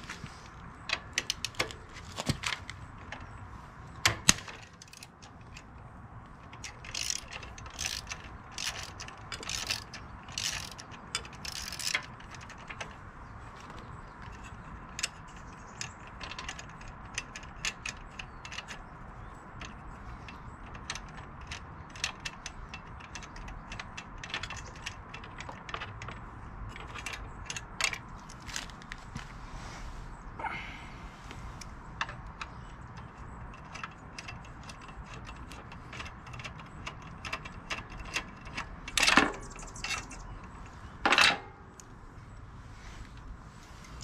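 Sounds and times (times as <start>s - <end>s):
sharp metallic clicks: 0.4s - 29.0s, 31.6s - 42.4s
hand ratchet clicking: 6.5s - 12.9s.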